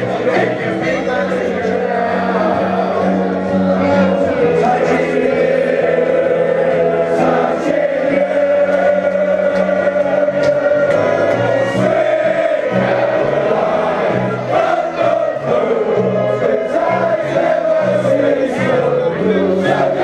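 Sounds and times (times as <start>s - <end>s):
crowd singing a chant: 0.0s - 20.0s.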